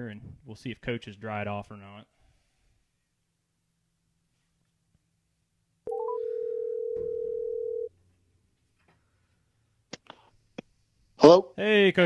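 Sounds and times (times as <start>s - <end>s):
telephone ringing tones: 5.9s - 7.9s.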